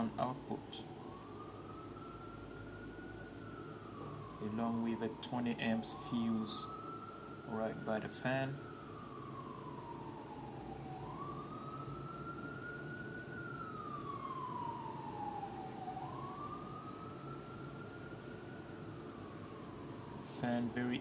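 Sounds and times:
steady background noise: 0.0 - 21.0
wailing siren: 0.0 - 21.0.

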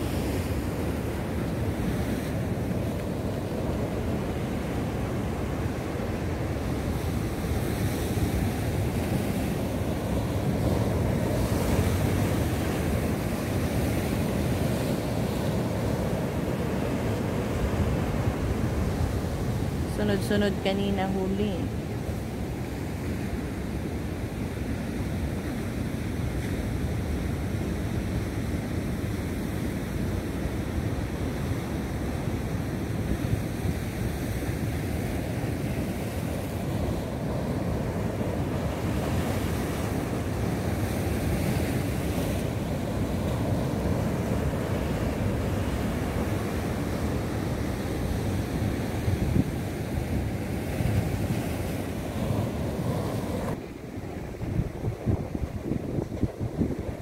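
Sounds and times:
sea surf breaking over rocks: 0.0 - 57.0
wind buffeting microphone: 33.5 - 57.0.

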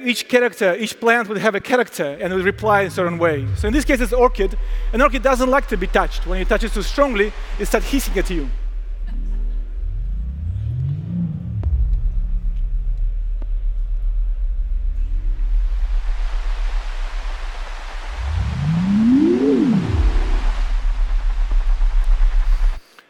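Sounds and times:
low electronic drone with gliding tones: 2.3 - 22.8
electronic hiss: 3.4 - 9.0, 14.7 - 23.0.

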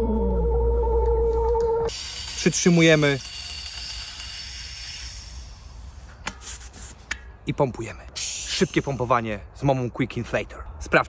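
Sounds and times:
gas inflator hissing: 1.9 - 7.0, 8.2 - 9.0.

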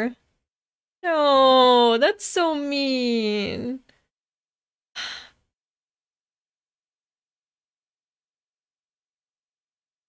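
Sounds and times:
woman sighing: 5.0 - 5.4.

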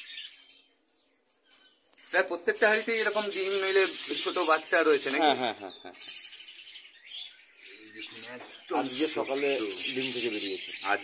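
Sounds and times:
budgerigars chirping: 0.0 - 11.0.

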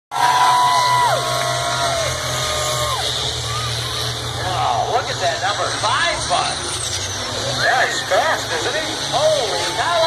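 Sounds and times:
long whoops: 0.1 - 4.0
crowd cheering: 0.1 - 4.4
low engine rumble: 0.1 - 10.0.

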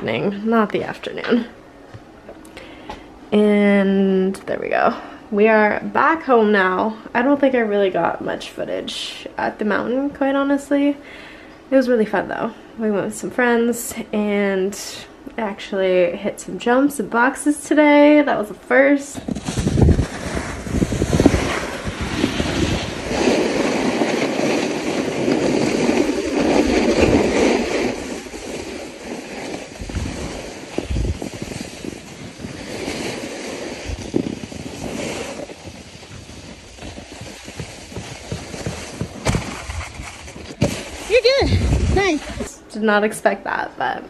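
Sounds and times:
wind on microphone: 19.2 - 28.9, 29.6 - 38.3, 41.1 - 42.6
snowboard sliding over snow: 19.3 - 42.6
low buffeting thuds: 29.7 - 32.6, 33.9 - 42.6.

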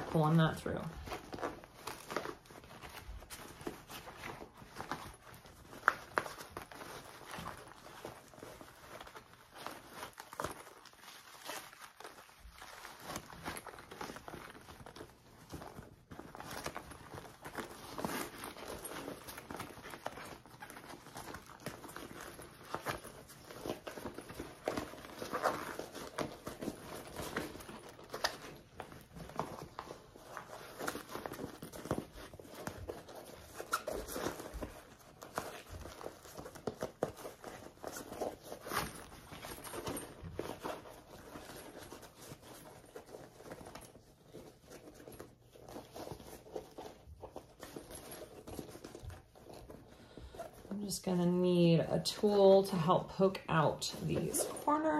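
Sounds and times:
fabric rustling and crinkling: 0.0 - 54.9.

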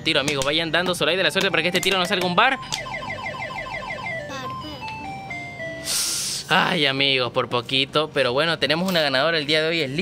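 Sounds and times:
slot machine electronic beeps: 1.6 - 5.9.

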